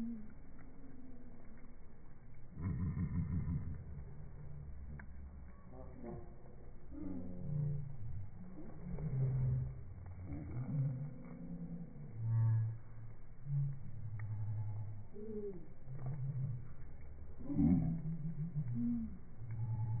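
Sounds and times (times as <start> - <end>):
slowed bird calls deep tones: 0.0 - 20.0.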